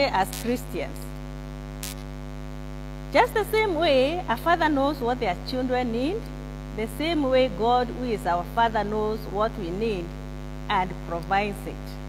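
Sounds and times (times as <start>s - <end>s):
soft hiss: 0.0s - 2.3s
electrical mains hum: 0.0s - 12.0s.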